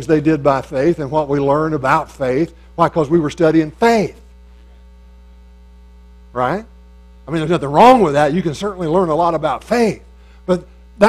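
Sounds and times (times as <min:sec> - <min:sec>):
man's voice: 0:00.0 - 0:04.2, 0:07.3 - 0:10.7
electrical mains hum: 0:00.0 - 0:11.0.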